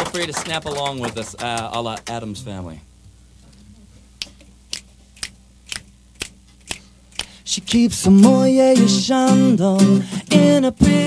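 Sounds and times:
finger snaps: 0:04.2 - 0:07.4.

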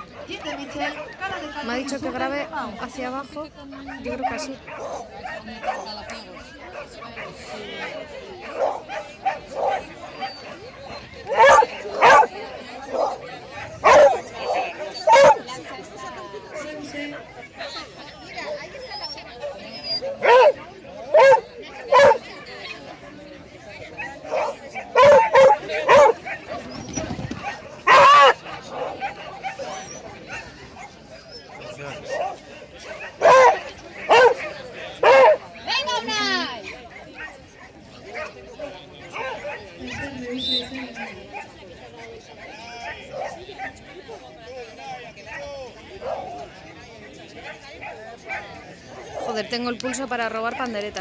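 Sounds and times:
dog barking loudly: 0:11.3 - 0:12.3, 0:12.9 - 0:15.4, 0:20.2 - 0:22.2, 0:24.3 - 0:26.6, 0:27.4 - 0:29.6, 0:31.9 - 0:35.4.

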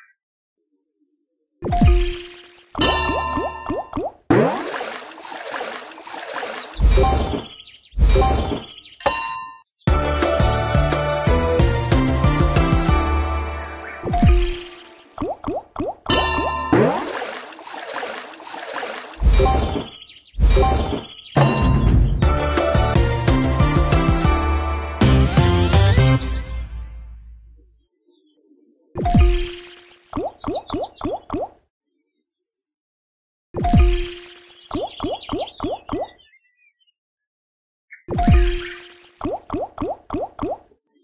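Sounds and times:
plopping blips falling in pitch: 0:01.6 - 0:04.2
rising watery bloops: 0:01.8 - 0:07.4, 0:14.0 - 0:19.8
slot machine game music: 0:09.9 - 0:15.2, 0:20.6 - 0:27.4.

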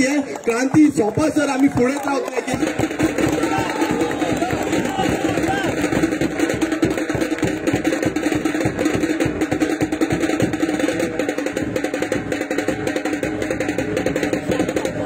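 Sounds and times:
fast busy drumbeat: 0:00.0 - 0:15.0.

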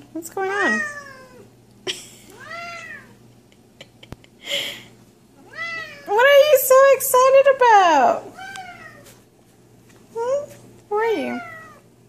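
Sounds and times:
cat meowing: 0:00.6 - 0:01.5, 0:02.3 - 0:03.2, 0:05.4 - 0:06.1, 0:08.3 - 0:09.1, 0:11.2 - 0:11.8.

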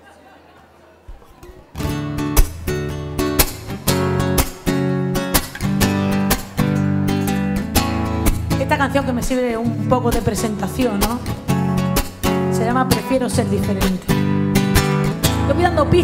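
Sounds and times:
acoustic guitar strumming chords: 0:01.7 - 0:16.0.

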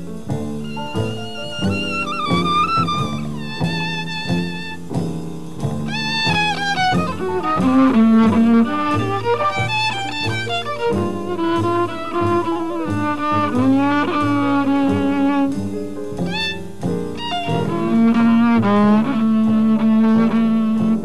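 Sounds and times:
bowed jazz violin: 0:00.0 - 0:21.0
double bass: 0:00.0 - 0:21.0.

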